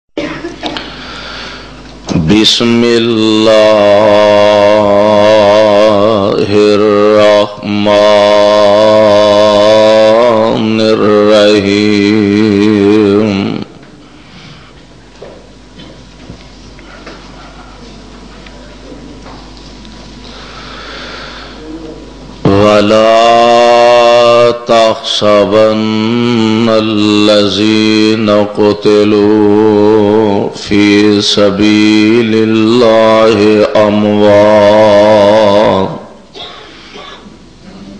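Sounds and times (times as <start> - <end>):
man reciting melodically: 2.1 - 13.8, 22.4 - 36.2.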